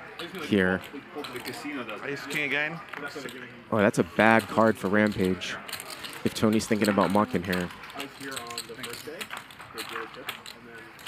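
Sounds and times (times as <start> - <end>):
faint chatter: 0.0 - 11.0
poker chips clicking: 0.2 - 11.0.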